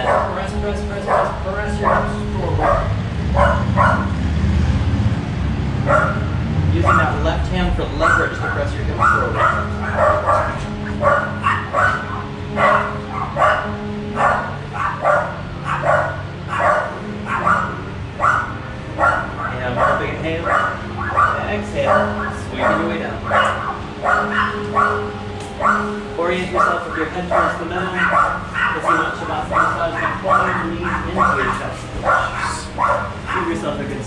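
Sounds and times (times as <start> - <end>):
dog barking: 0.0 - 4.2, 5.8 - 7.4, 8.0 - 33.8.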